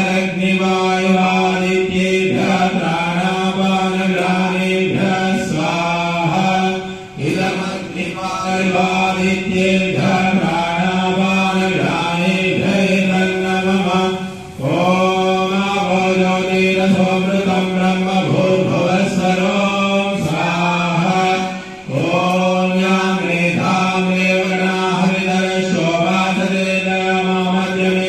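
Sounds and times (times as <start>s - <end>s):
man chanting into microphone: 0.0s - 28.0s.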